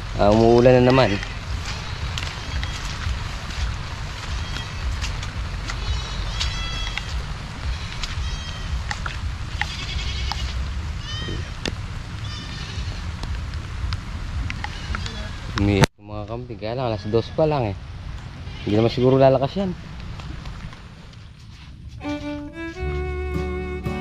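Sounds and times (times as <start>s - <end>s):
wind rumble on microphone: 0.0s - 22.9s
high-pitched animal calls: 4.3s - 5.0s, 5.7s - 8.9s, 9.6s - 11.6s.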